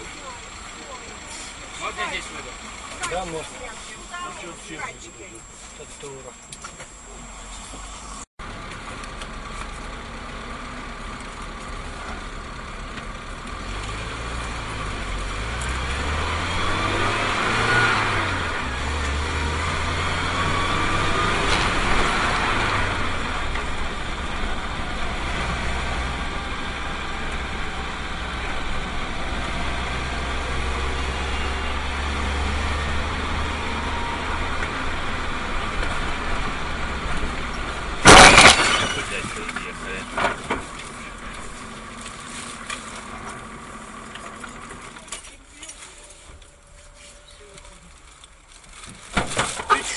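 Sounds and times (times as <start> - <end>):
minibus engine: 0.0 - 49.9
road noise: 0.0 - 49.9.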